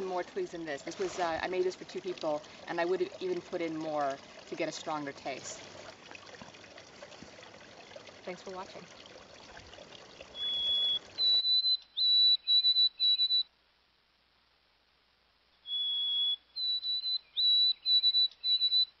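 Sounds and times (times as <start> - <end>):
creek water running: 0.0 - 12.0
high whistled notes: 10.4 - 13.4, 15.6 - 18.9.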